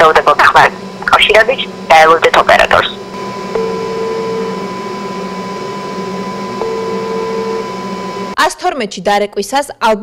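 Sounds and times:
steady hum: 0.0s - 8.6s
phone ringback beep: 3.5s - 4.7s, 6.6s - 8.2s.

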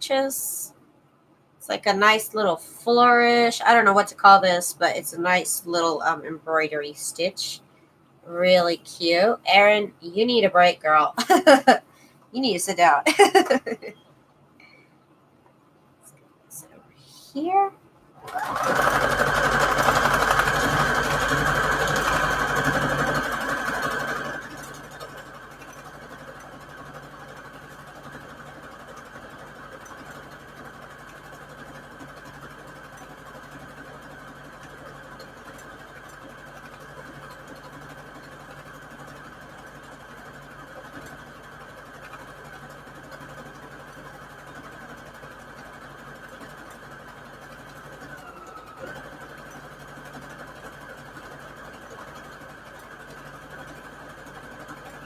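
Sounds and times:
sewing machine stitching: 18.2s - 55.0s.

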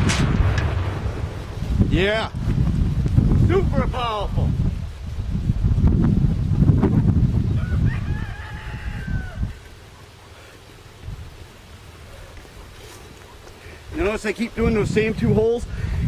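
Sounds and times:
wind rumbling on microphone: 0.0s - 16.0s
rooster crowing: 7.5s - 9.8s.

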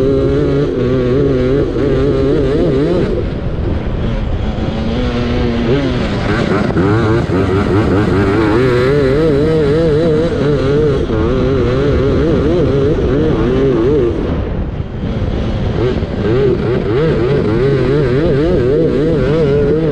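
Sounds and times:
lawnmower engine revving: 0.0s - 19.9s
wind rumble on microphone: 0.0s - 19.9s.

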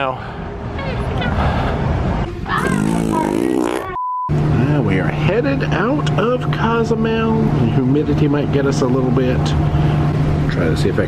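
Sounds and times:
wavering voice-like sound: 2.5s - 4.0s
steady test-pattern beep: 4.0s - 4.3s.

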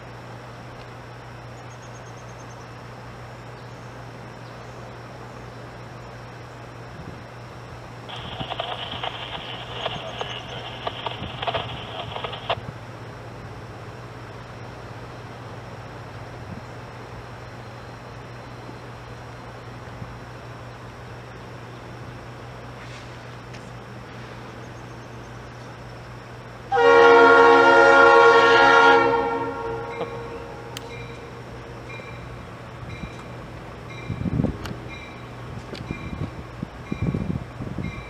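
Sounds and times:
steady low hum: 0.0s - 22.8s
locomotive air horn blast: 26.7s - 30.8s.

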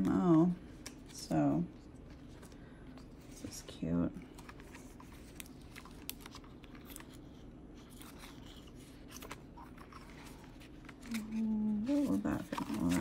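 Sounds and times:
paper pages turning: 1.9s - 13.0s.

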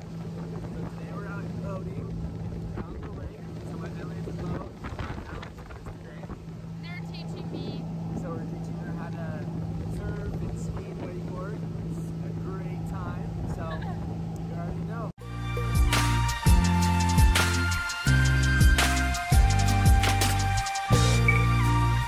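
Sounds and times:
motorboat engine droning: 0.0s - 22.0s.

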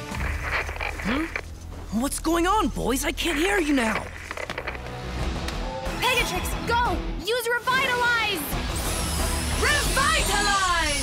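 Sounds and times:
dramatic music: 0.0s - 11.0s.

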